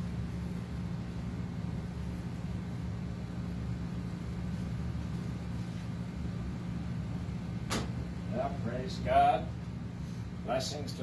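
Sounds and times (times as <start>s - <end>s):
room noise: 0.0s - 11.0s
steady low hum: 0.0s - 11.0s.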